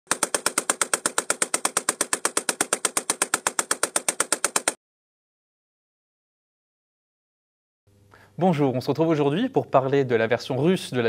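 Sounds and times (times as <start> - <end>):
machine gun firing long burst: 0.1 - 4.8.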